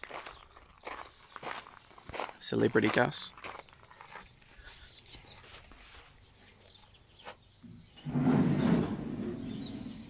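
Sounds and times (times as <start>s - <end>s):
footsteps on grass and gravel: 0.0s - 7.5s.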